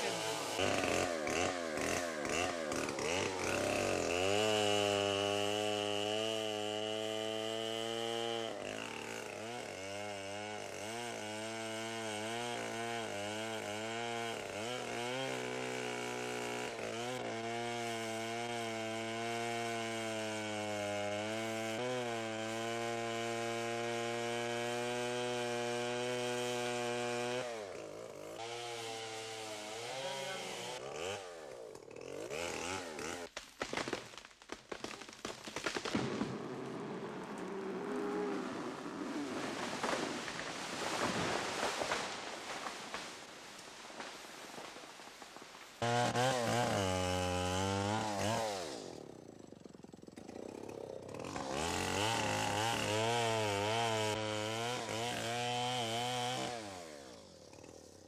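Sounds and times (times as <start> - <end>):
chainsaw cutting tree: 0.0 - 58.0.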